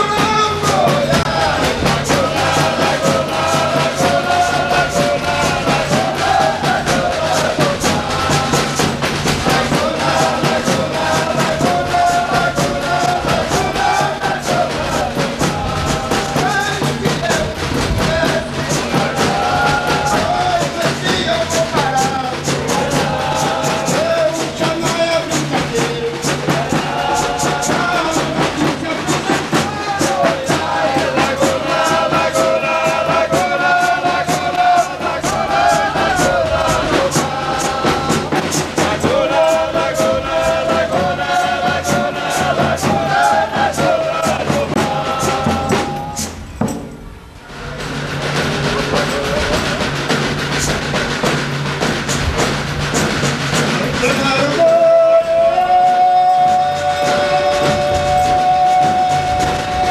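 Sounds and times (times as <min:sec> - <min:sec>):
men singing: 0:00.0 - 0:46.5, 0:47.5 - 0:59.9
large drums beating: 0:00.0 - 0:59.9.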